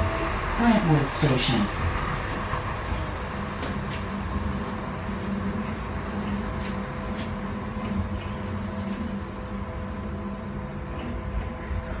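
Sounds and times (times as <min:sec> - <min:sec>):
rail car rumble: 0:00.0 - 0:12.0
steady hum: 0:00.0 - 0:12.0.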